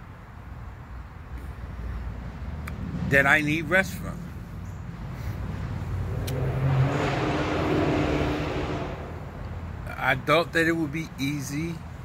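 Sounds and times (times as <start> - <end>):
motor vehicle passing by: 2.0 - 10.0.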